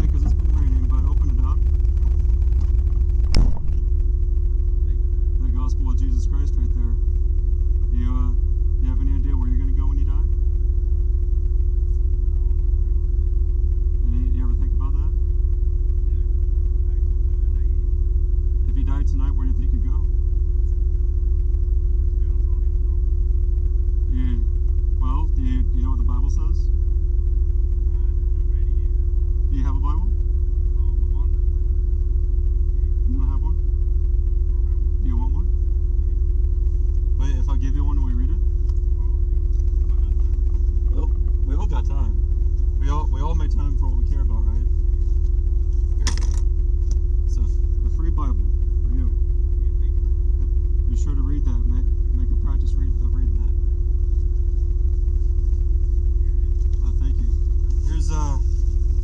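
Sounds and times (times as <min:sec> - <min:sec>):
car idling: 0:00.0 - 0:59.0
constant hum: 0:00.0 - 0:59.0.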